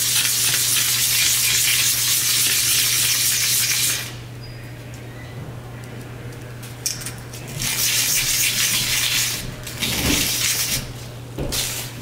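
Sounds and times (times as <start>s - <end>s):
steady low hum: 3.9s - 12.0s.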